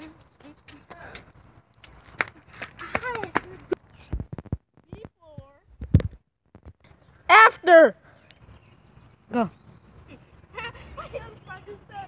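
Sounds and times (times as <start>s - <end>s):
person calling out: 7.3s - 8.0s.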